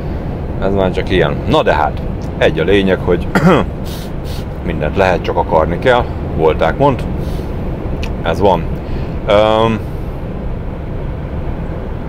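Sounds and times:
road noise: 0.0 - 12.0
truck engine hum: 0.0 - 12.0.

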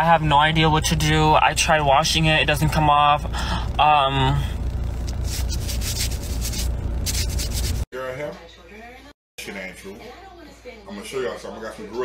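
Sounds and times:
scratchy rubbing on microphone: 5.0 - 7.9.

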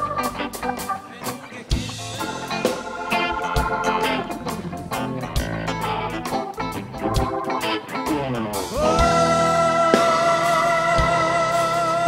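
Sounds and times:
electric guitar: 0.0 - 12.0
organ: 0.0 - 12.0
rock band playing live: 0.0 - 12.0.

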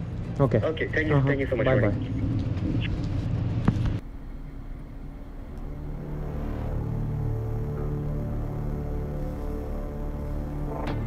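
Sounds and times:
rumbling background noise: 0.0 - 11.0
ominous droning music: 4.0 - 11.0.

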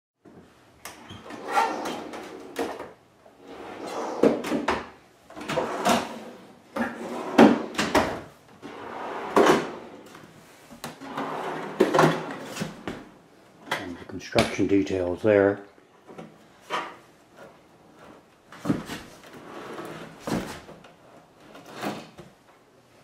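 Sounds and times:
drawer rolling on metal slides: 1.0 - 10.2, 10.9 - 13.2, 19.2 - 22.2.

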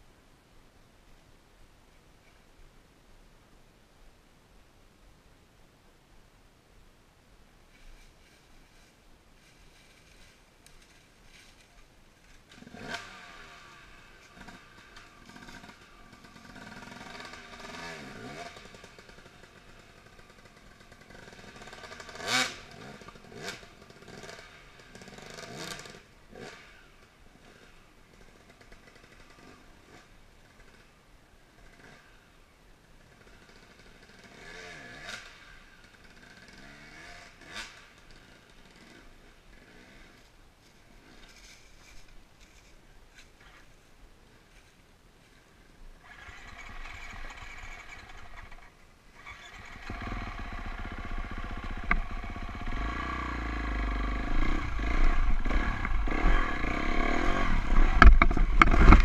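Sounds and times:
dirt bike engines revving: 46.0 - 59.0.

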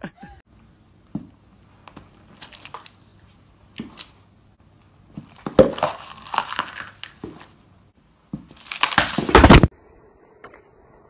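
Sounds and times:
pepper crunching underfoot: 5.0 - 7.6, 8.3 - 9.7.

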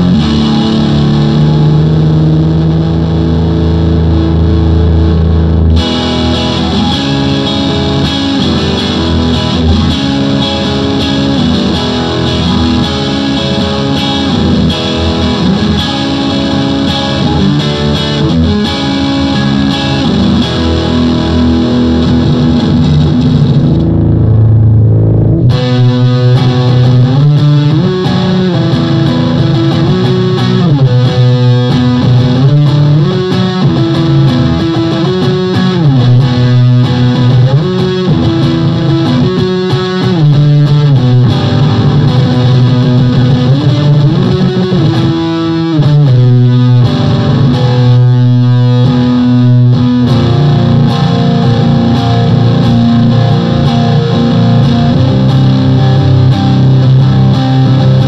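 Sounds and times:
electric guitar riff: 0.0 - 58.0.

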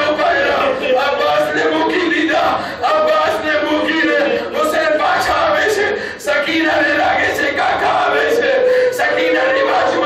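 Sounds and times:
crowd chanting: 0.0 - 10.0
man leading chant at microphone: 0.0 - 10.0.

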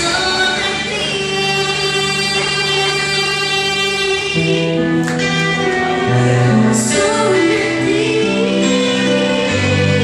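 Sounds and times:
girl singing into a microphone: 0.0 - 5.3, 6.2 - 10.0.

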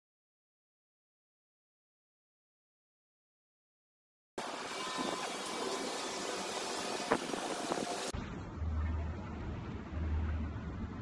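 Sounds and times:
steady hiss: 4.4 - 8.1
low rumble: 8.1 - 11.0.

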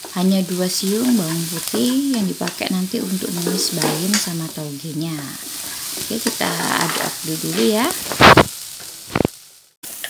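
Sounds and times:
food sizzling in oil: 0.0 - 10.0.

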